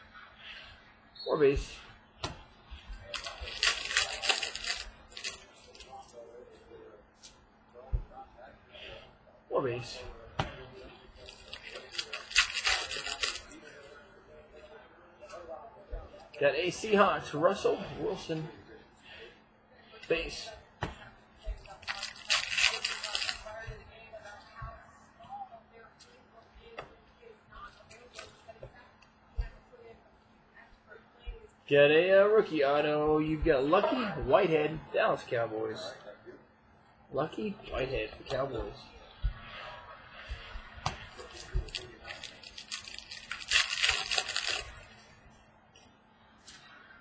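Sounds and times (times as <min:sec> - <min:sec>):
card pack wrapper crinkling: 0:03.0 - 0:05.9, 0:11.2 - 0:13.6, 0:21.6 - 0:23.5, 0:41.1 - 0:45.0.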